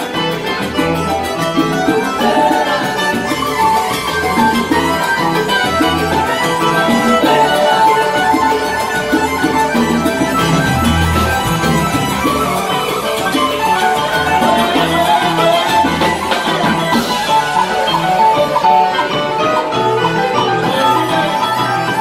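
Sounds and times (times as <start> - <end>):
live salsa band playing: 0.0 - 22.0.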